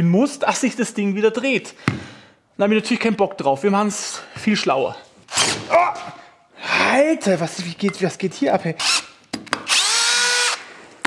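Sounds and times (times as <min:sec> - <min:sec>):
man exclaiming: 0:05.7 - 0:06.2.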